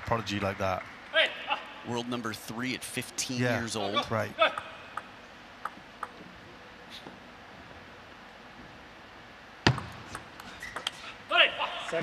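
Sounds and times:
ping pong ball clicks: 0:04.6 - 0:06.2
person shouting: 0:11.3 - 0:12.0.

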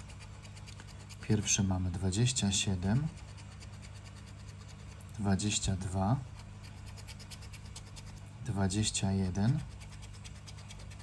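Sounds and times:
scratch card being scraped: 0:00.0 - 0:08.3, 0:09.4 - 0:11.0.

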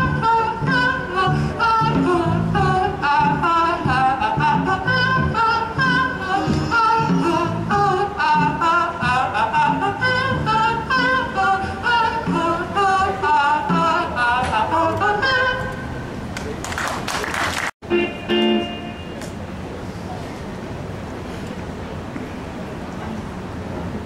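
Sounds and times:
electric bass guitar: 0:00.0 - 0:11.1
man singing lead: 0:00.0 - 0:15.7.

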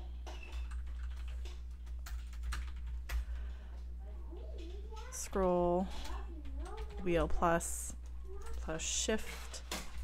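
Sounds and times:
typing on keyboard: 0:00.3 - 0:03.4, 0:06.0 - 0:07.1.

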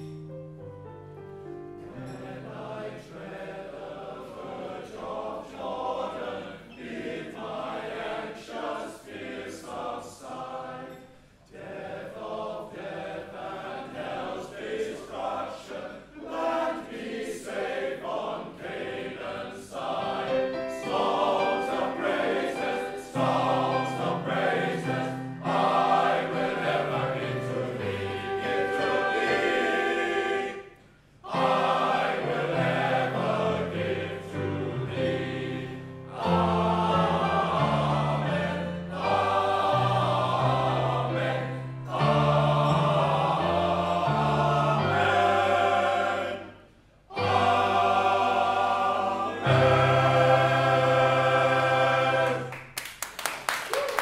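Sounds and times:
male choir singing in harmony: 0:01.9 - 0:52.6.

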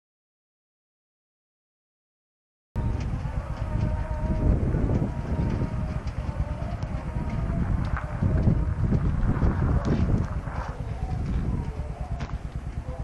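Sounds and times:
faint calls: 0:02.8 - 0:13.0
horse hooves on gravel: 0:02.8 - 0:13.0
wind buffeting microphone: 0:02.8 - 0:13.0.

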